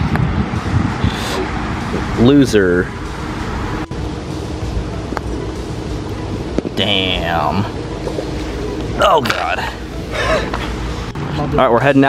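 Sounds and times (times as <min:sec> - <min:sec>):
wind buffeting microphone: 0:00.0 - 0:06.8.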